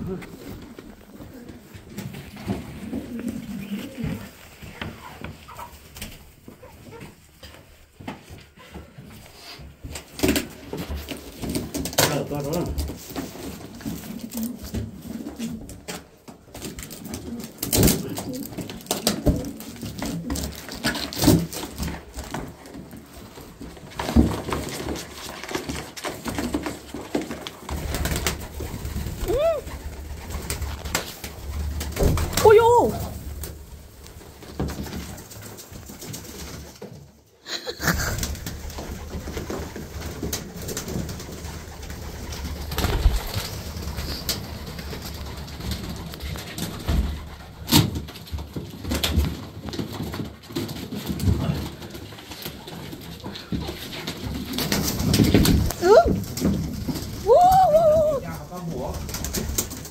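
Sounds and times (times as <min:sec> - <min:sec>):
pigeon cooing: 0:00.0 - 0:05.8, 0:16.9 - 0:21.2, 0:28.1 - 0:30.9, 0:57.2 - 0:58.5.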